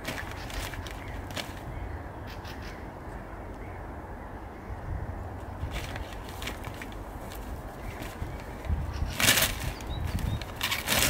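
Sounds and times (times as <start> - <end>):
harsh bird calls: 0.0 - 6.2, 7.7 - 11.0
low outdoor rumble: 0.0 - 11.0.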